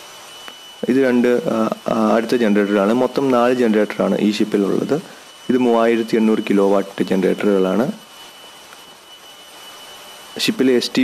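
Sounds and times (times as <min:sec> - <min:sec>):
engine room machinery roar: 0:00.0 - 0:11.0.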